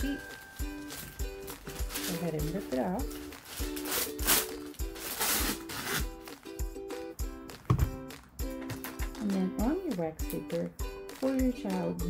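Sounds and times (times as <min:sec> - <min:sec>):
background music with beat: 0:00.0 - 0:12.0
wax paper rustling and tearing: 0:00.1 - 0:06.3.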